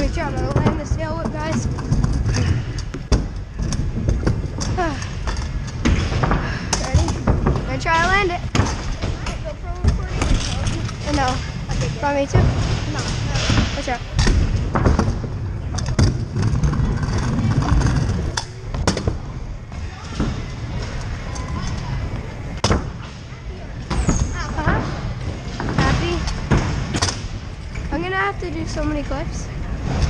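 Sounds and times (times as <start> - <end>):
scooter wheels rolling on plywood: 0.0 - 23.2.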